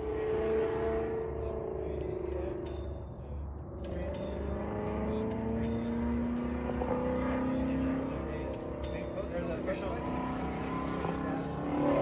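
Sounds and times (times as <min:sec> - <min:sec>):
race car engine accelerating: 0:00.0 - 0:12.0.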